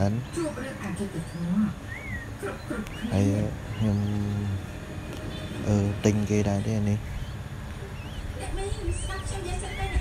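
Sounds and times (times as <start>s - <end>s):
whistled bird call: 1.3s - 4.4s, 7.2s - 10.0s.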